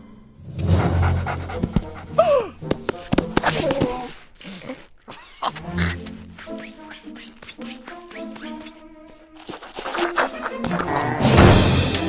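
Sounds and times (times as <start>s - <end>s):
background music: 0.0s - 12.0s
cartoon reindeer panting: 0.6s - 11.5s.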